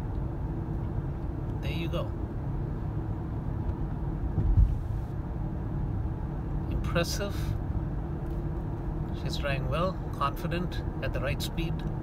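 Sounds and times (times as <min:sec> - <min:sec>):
car cabin road and engine rumble: 0:00.0 - 0:12.0
low thump: 0:04.3 - 0:04.9.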